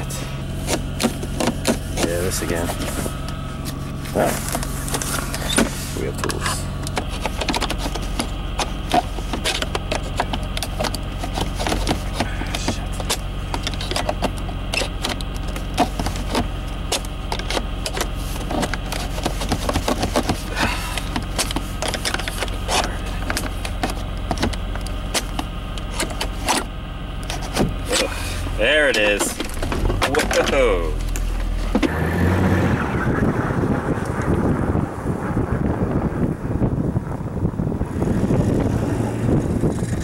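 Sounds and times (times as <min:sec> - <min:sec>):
car engine idling: 0:00.0 - 0:40.0.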